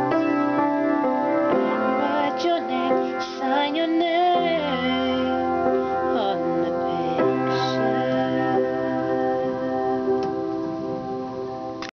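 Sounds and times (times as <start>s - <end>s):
piano chord sustained: 0.0s - 11.9s.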